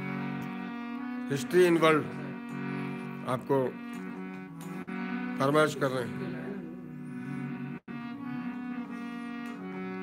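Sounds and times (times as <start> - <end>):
harmonium chords: 0.0 - 10.0.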